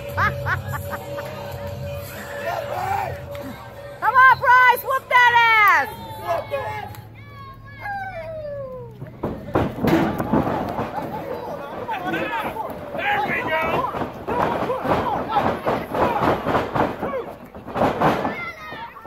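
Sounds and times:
spectators shouting: 0:02.0 - 0:19.0.

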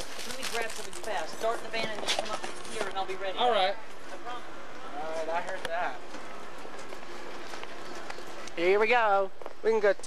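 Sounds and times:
city street background noise: 0:00.0 - 0:10.0.

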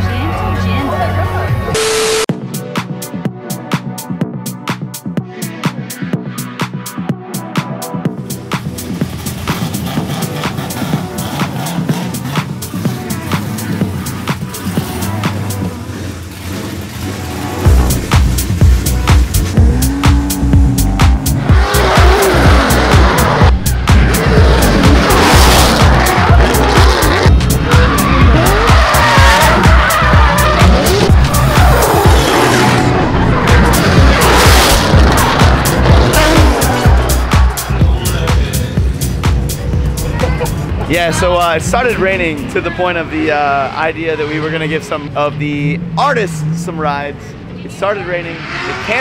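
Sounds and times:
electronic dance music: 0:01.7 - 0:15.6, 0:17.7 - 0:42.0
car engines revving: 0:08.2 - 0:49.0
tyres squealing: 0:24.6 - 0:37.7.

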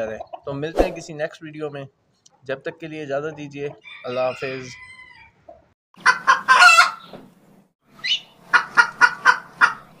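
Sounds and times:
chickens clucking: 0:00.0 - 0:00.6, 0:02.2 - 0:07.3, 0:08.0 - 0:10.0.

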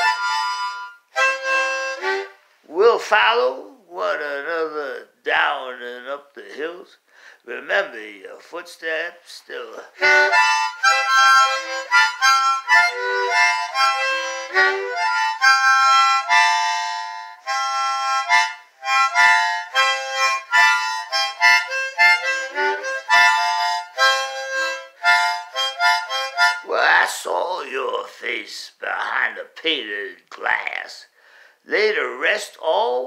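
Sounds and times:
harmonica melody: 0:00.0 - 0:02.5, 0:09.8 - 0:27.1
man's voice: 0:02.7 - 0:10.0, 0:26.6 - 0:33.0.

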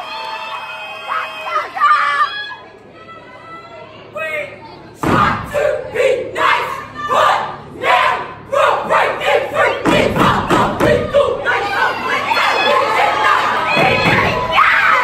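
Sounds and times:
crowd noise: 0:00.0 - 0:15.0
group shouting a chant: 0:05.0 - 0:15.0.

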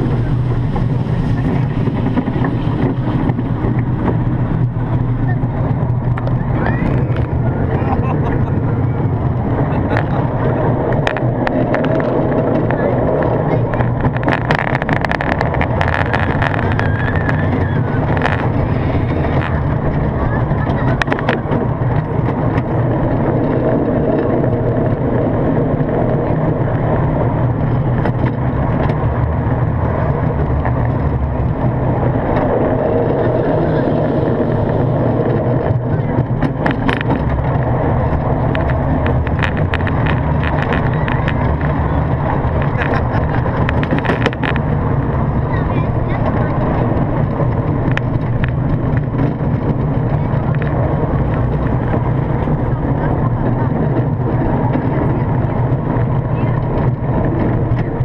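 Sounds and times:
roller coaster train rumbling on track: 0:00.0 - 0:58.0
wind on microphone: 0:00.0 - 0:58.0.

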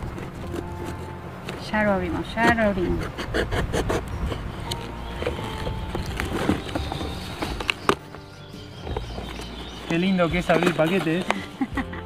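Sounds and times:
cardboard box being opened: 0:00.0 - 0:01.6, 0:03.9 - 0:11.4
background music: 0:00.0 - 0:12.0
sharp crackles: 0:04.6 - 0:11.4.

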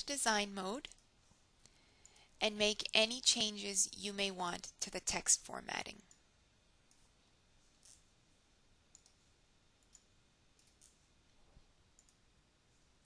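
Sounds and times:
faint computer mouse clicks: 0:08.9 - 0:09.2, 0:12.0 - 0:12.2.

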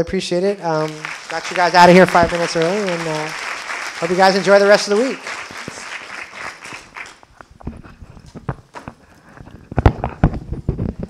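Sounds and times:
audience applause: 0:00.7 - 0:07.3.

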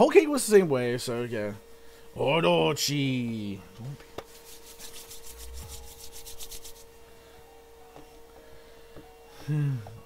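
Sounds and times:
faint hum: 0:00.0 - 0:10.0
rapid rhythmic scratching: 0:04.3 - 0:06.9.

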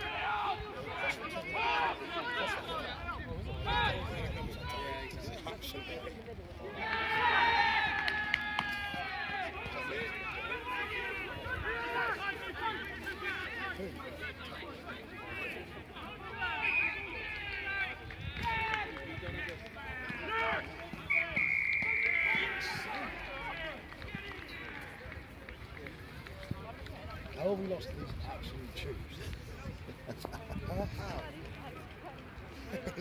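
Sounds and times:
crowd and player chatter: 0:00.0 - 0:33.0
voices shouting and calling out: 0:00.0 - 0:33.0
referee's whistle blast: 0:21.0 - 0:22.8.

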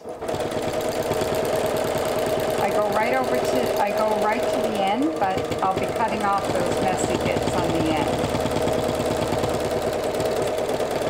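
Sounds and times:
electric sewing machine stitching: 0:00.0 - 0:11.0.

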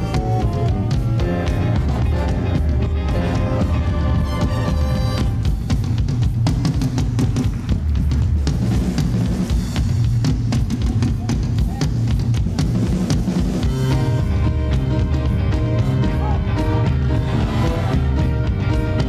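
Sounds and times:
heavy bass: 0:00.0 - 0:19.0
live band playing up-tempo music: 0:00.0 - 0:19.0.

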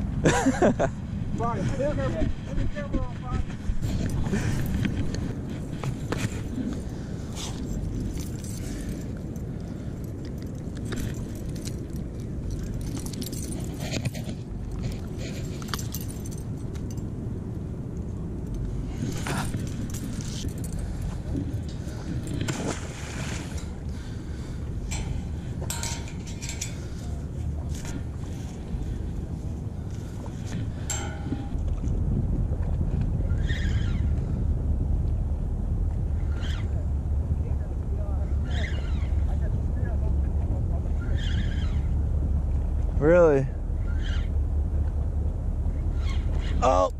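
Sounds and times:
wind rumbling on microphone: 0:00.0 - 0:46.9
fishing gear clicks and rustles: 0:03.5 - 0:33.2.

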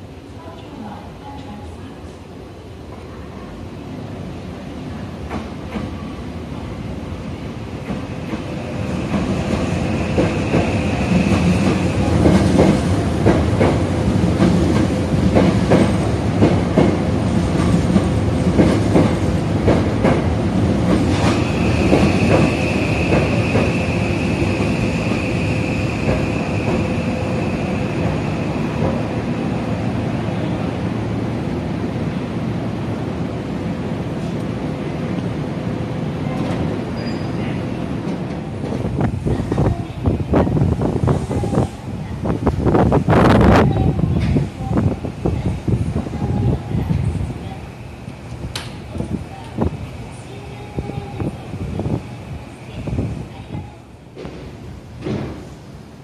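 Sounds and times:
electric train rumble: 0:03.5 - 0:56.0.

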